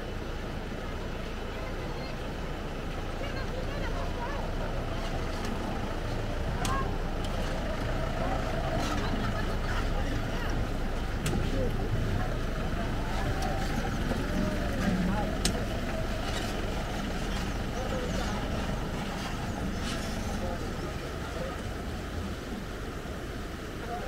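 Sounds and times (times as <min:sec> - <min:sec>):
indistinct voices: 0:01.4 - 0:24.0.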